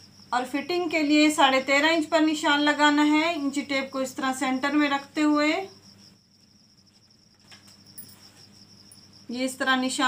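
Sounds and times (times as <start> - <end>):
faint high-pitched whine: 0.0 - 10.0.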